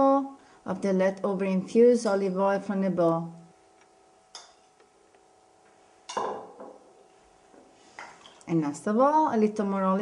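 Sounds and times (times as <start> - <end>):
spoon clinking against bowl: 4.3 - 4.7.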